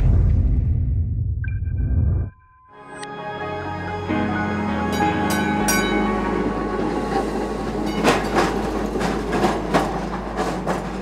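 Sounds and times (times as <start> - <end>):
train running on rails: 4.0 - 11.0.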